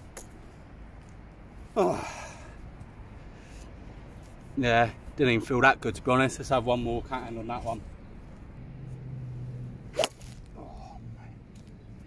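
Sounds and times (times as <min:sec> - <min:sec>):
golf club swing whoosh: 0:09.4 - 0:10.6
golf club striking ball: 0:09.9 - 0:10.5.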